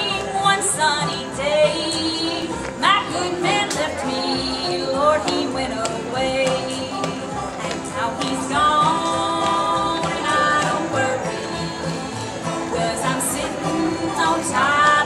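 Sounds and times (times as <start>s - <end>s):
acoustic guitar: 0.0s - 15.0s
banjo: 0.0s - 15.0s
fiddle: 0.0s - 15.0s
mandolin: 0.0s - 15.0s
upright bass: 0.0s - 15.0s.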